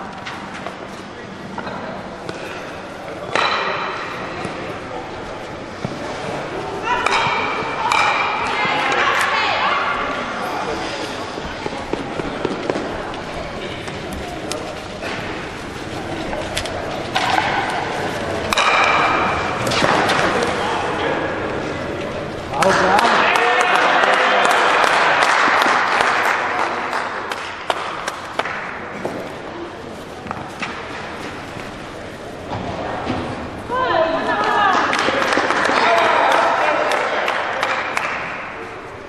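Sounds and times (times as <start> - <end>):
crowd cheering and clapping: 22.6 - 28.2, 34.4 - 38.6.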